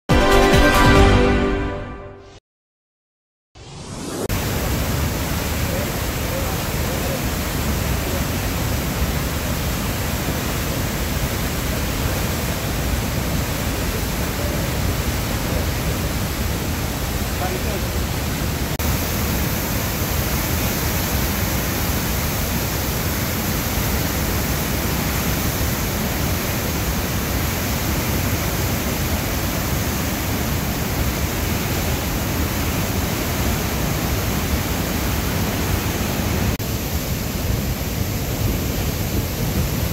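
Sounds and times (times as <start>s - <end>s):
water rushing through spillway: 4.3s - 39.9s.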